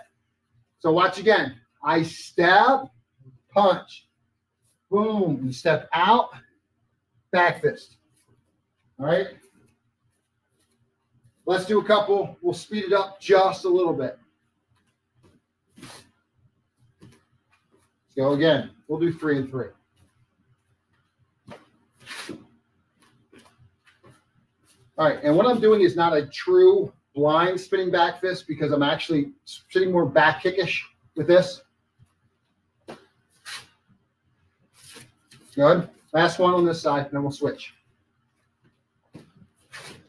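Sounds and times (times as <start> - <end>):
fabric swishing: 15.2 - 16.1, 21.5 - 24.9, 32.9 - 33.8, 39.2 - 40.0
bare feet on training mat: 21.4 - 25.0, 39.1 - 40.0
uniform swishing: 21.5 - 22.5.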